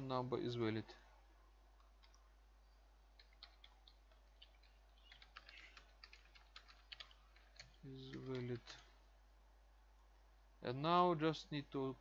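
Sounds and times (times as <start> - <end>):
computer keyboard typing: 1.8 - 2.2, 3.1 - 8.9.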